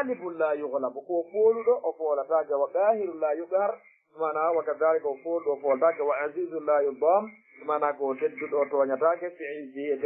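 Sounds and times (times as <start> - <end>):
man speaking in a lecture: 0.0 - 10.0.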